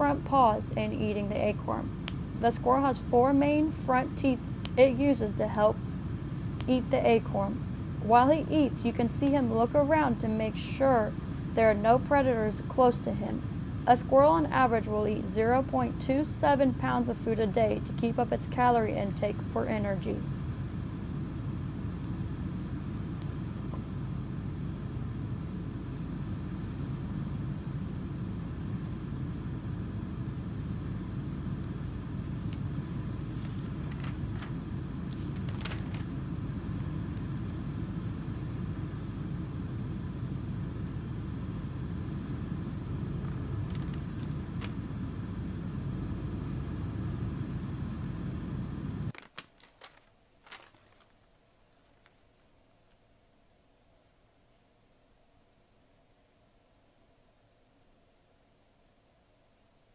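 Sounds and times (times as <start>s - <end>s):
low outdoor rumble: 0.0s - 51.2s.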